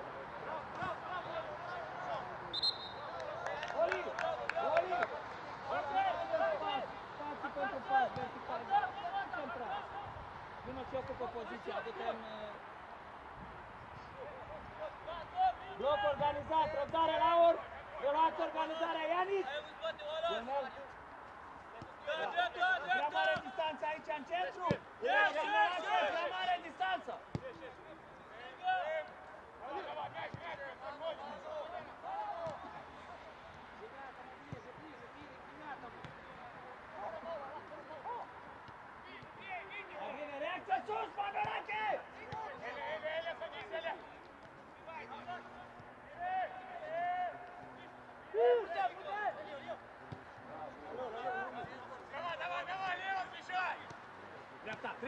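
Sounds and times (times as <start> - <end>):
players shouting: 0.4 - 10.2, 21.8 - 27.6, 39.1 - 44.1, 44.8 - 54.0.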